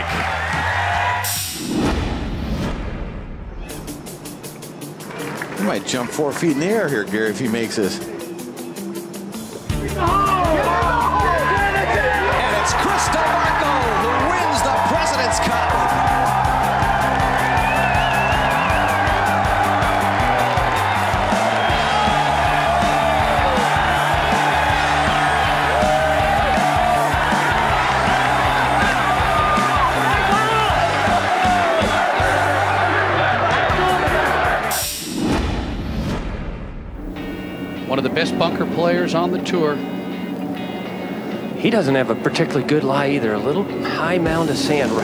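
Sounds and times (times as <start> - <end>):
crowd cheering and whooping: 0.0 - 1.5, 10.0 - 34.8
background music with bass line: 3.6 - 35.5.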